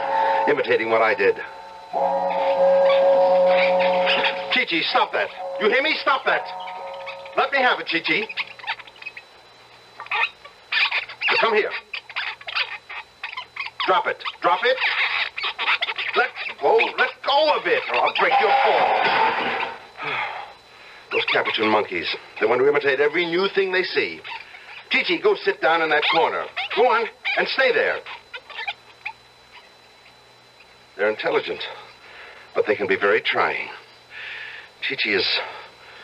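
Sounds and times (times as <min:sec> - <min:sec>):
monkey chattering: 0:03.0 - 0:09.2, 0:10.0 - 0:19.8, 0:24.2 - 0:25.0, 0:25.8 - 0:30.2.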